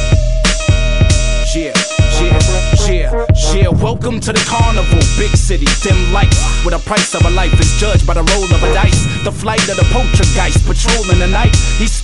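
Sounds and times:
heavy bass and kick drum: 0:00.0 - 0:12.0
rapping over a beat: 0:00.0 - 0:12.0.

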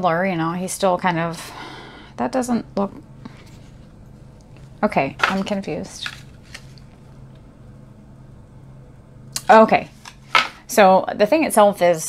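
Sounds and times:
woman speaking: 0:00.0 - 0:03.0, 0:04.8 - 0:06.1, 0:09.4 - 0:09.9, 0:10.7 - 0:12.0
steady low hum: 0:00.0 - 0:12.0
cardboard rustling and scraping: 0:03.3 - 0:03.9, 0:05.2 - 0:06.9.

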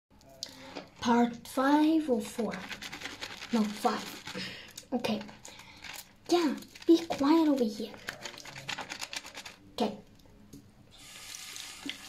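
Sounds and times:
tap water running into sink: 0:11.0 - 0:12.0.

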